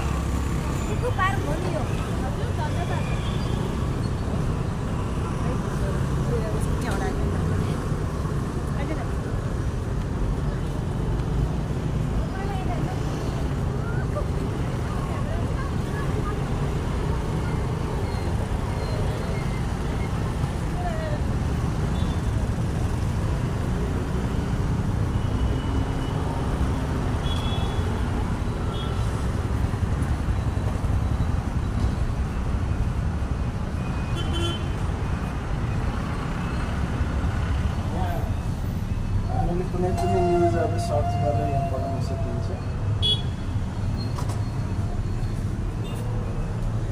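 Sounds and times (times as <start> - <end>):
road traffic rumble: 0.0 - 46.9.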